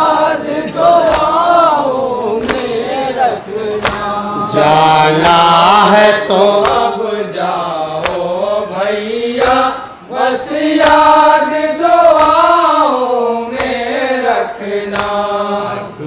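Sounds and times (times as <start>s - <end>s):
men chanting a lament: 0.0s - 16.0s
hands slapping chests: 1.0s - 1.4s, 2.4s - 2.7s, 3.8s - 4.1s, 6.6s - 6.9s, 8.0s - 8.3s, 13.6s - 13.8s, 14.9s - 15.2s.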